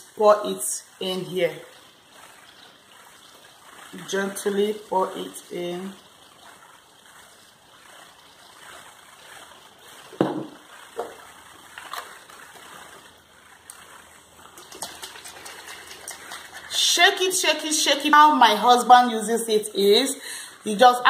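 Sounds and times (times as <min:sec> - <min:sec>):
liquid trickling into bottle: 0:00.0 - 0:17.4
bottle rattling when shaken: 0:00.0 - 0:21.0
plastic bottle knocks: 0:10.2 - 0:11.1.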